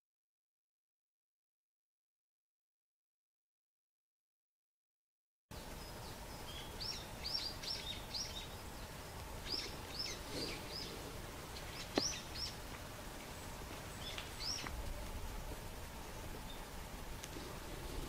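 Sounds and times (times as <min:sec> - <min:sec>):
small birds chirping: 0:05.5 - 0:18.0.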